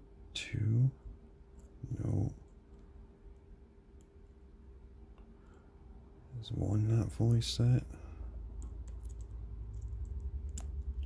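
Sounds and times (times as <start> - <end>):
person speaking: 0.3 - 2.6, 6.3 - 8.2.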